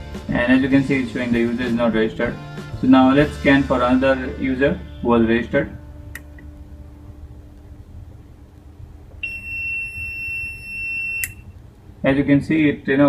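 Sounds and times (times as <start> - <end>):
high electronic beep: 9.2 - 11.4.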